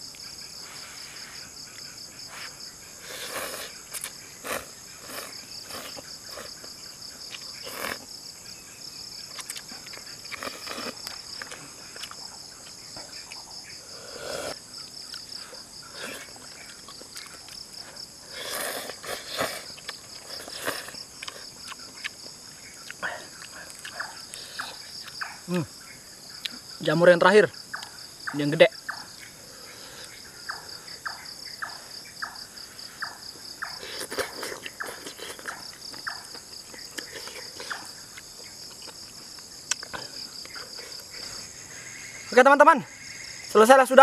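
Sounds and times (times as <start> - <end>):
insects trilling: 0.0 - 44.0
slurping broth: 2.4 - 6.6, 7.6 - 8.1, 14.0 - 14.6, 18.3 - 21.5
noodle slurping: 3.0 - 6.7, 7.6 - 8.1, 14.0 - 14.6, 18.3 - 21.5, 33.8 - 35.5.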